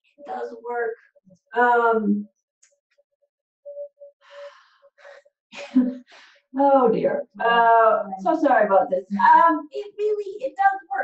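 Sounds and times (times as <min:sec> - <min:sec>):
woman speaking: 0:00.2 - 0:00.9, 0:01.6 - 0:02.2, 0:05.6 - 0:11.0.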